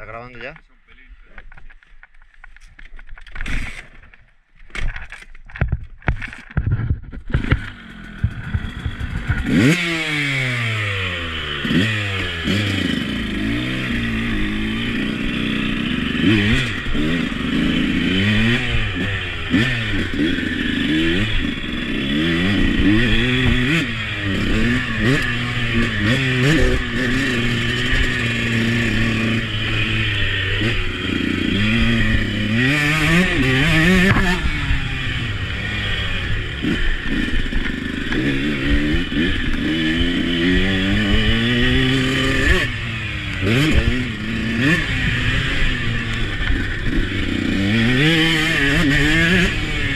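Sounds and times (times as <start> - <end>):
motocross bike engine revving: 3.2 - 4.2, 6.2 - 49.9.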